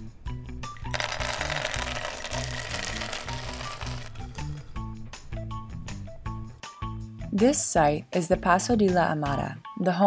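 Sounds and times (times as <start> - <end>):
background music: 0.0 - 10.0
beans clattering onto countertop: 0.9 - 4.4.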